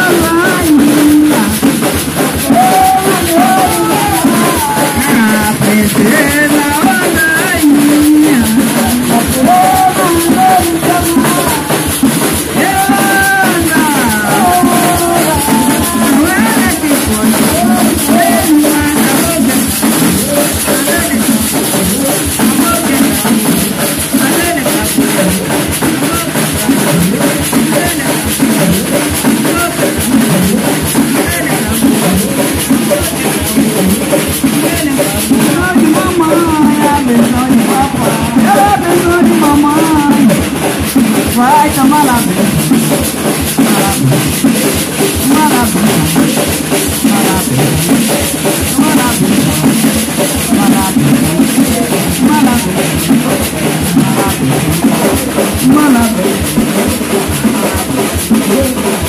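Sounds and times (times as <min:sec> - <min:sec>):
drums in a steady beat: 0:00.0 - 0:59.0.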